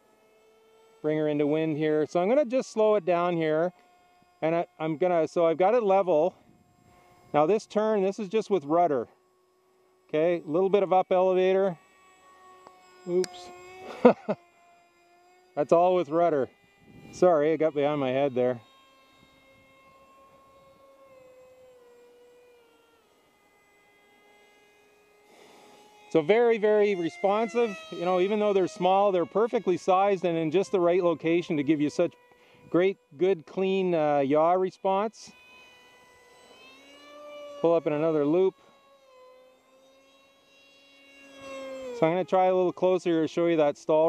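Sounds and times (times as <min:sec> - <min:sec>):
distant model jet motor whine: 0:00.0 - 0:44.0.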